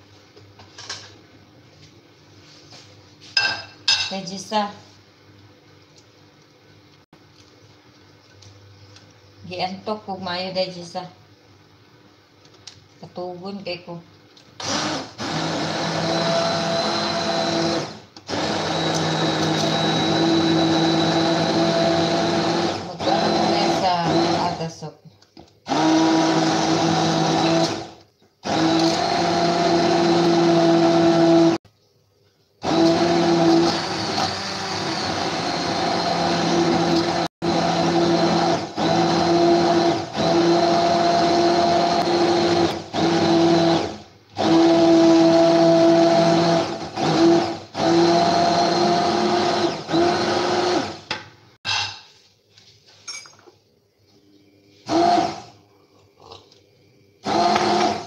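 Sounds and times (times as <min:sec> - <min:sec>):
immersion blender motor hum: 0:14.6 - 0:24.6, 0:25.7 - 0:31.6, 0:32.6 - 0:51.1, 0:54.9 - 0:55.6, 0:57.2 - 0:58.0.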